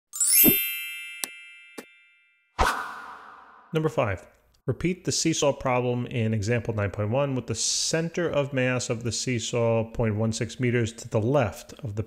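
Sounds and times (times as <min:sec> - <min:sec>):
rising shimmer into ringing chime: 0:00.1 - 0:02.2.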